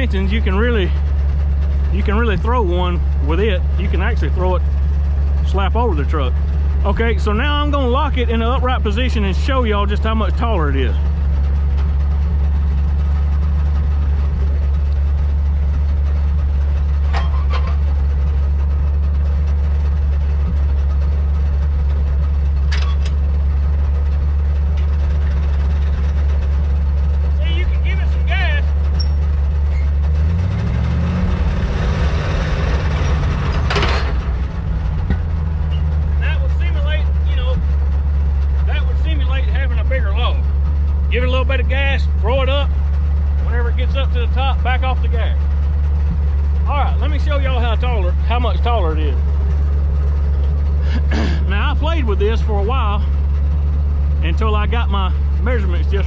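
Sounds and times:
truck engine idling and revving: 0:00.0 - 0:56.0.

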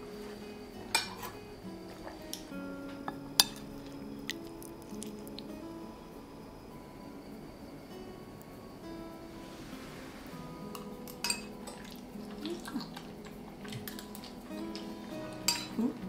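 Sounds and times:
soft background music: 0:00.0 - 0:16.0
metal spoon clinking on plate: 0:00.9 - 0:01.4, 0:03.0 - 0:05.2, 0:10.7 - 0:15.9.

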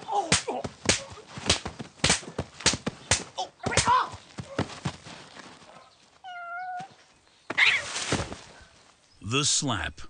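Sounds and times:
sharp slaps: 0:00.1 - 0:04.2
cat meow: 0:06.2 - 0:06.9.

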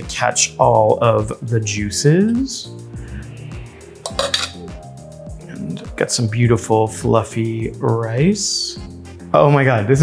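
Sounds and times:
spoon scraping metal pot: 0:04.0 - 0:04.8
sharp clink: 0:04.1 - 0:04.7.

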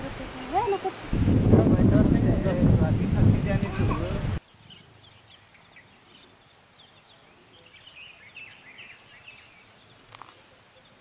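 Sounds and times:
steady high hiss: 0:00.0 - 0:11.0
small birds chirping: 0:03.7 - 0:11.0.

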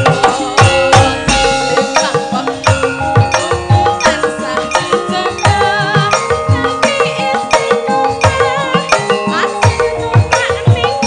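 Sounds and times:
hand drum strokes: 0:00.0 - 0:05.8
ringing metallophone tones: 0:00.0 - 0:11.0
woman singing into microphone: 0:00.0 - 0:11.0.

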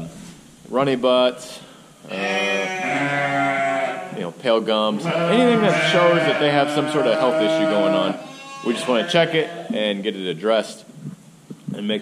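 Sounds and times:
lamb bleating: 0:02.1 - 0:04.2, 0:05.0 - 0:09.8.

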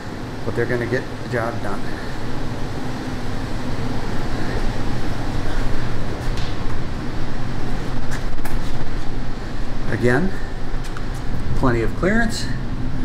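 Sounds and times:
low rumbling hum: 0:00.0 - 0:13.0.

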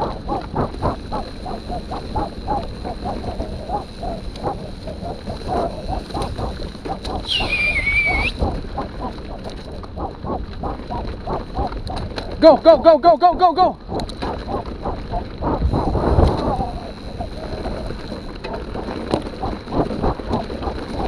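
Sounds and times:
hard rhythmic panting: 0:00.0 - 0:13.0, 0:13.6 - 0:21.0
bike tyres rumbling on dirt: 0:00.0 - 0:21.0
high squeal: 0:07.3 - 0:08.4.

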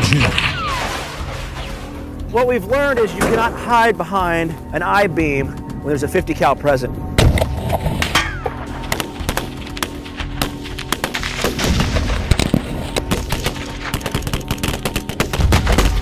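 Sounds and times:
background music: 0:00.0 - 0:16.0
rapid gunshots: 0:13.1 - 0:16.0.

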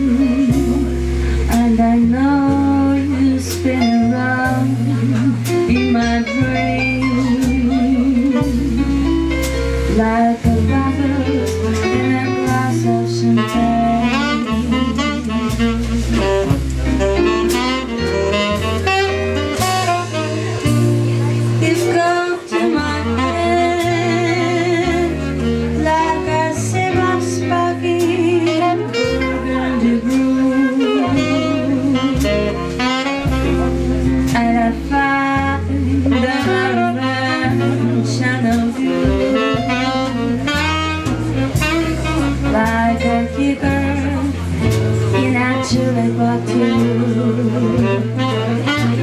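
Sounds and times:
bass line: 0:00.0 - 0:49.0
drums with cymbal strokes: 0:00.0 - 0:49.0
piano: 0:00.0 - 0:49.0
saxophone soloing: 0:02.9 - 0:49.0.

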